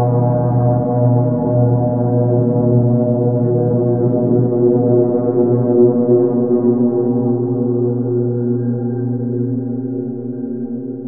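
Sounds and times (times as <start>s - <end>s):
ambient low drone: 0.0s - 11.0s.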